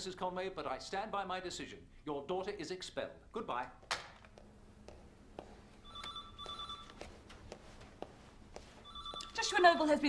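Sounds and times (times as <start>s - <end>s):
footsteps on hard floor: 4.3s - 9.4s
telephone ringing two-tone trill: 5.8s - 7.0s, 8.8s - 10.0s.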